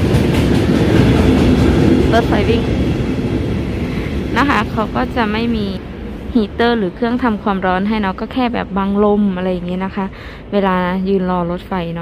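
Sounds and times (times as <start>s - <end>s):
train rumbling along track: 0.0s - 12.0s.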